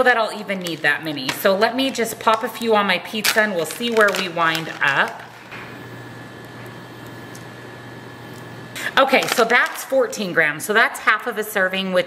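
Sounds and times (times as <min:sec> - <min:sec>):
kitchen appliances humming: 0:00.0 - 0:12.0.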